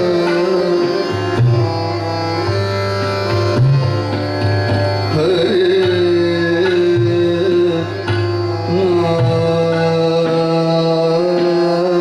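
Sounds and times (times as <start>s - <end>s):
deep tabla strokes: 0.0s - 12.0s
harmonium notes: 0.0s - 12.0s
tanpura drone: 0.0s - 12.0s.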